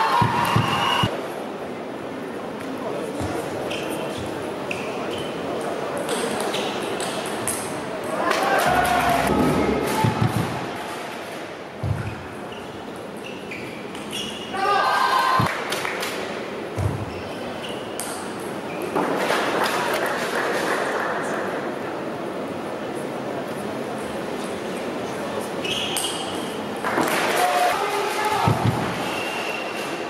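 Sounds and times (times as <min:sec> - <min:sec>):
loud voices: 0:00.0 - 0:01.1, 0:07.6 - 0:11.3.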